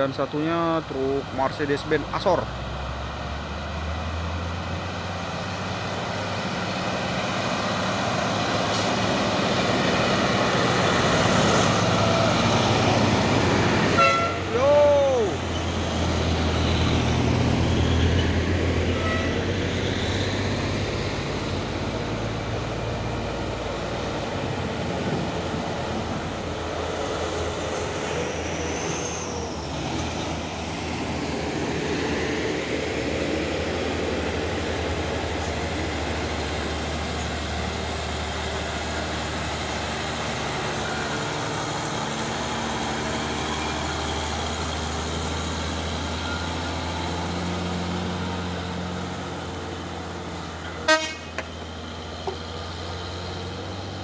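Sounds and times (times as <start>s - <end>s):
truck diesel engine: 0.0s - 54.0s.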